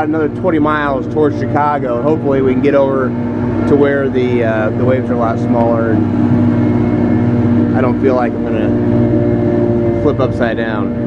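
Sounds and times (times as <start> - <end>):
boat motor droning: 0.0 - 11.0.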